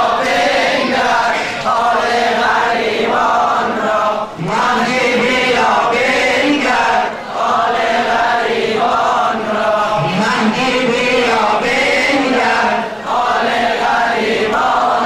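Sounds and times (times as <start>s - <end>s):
male voices chanting: 0.0s - 15.0s
man chanting into a microphone: 4.2s - 7.1s, 9.4s - 13.0s.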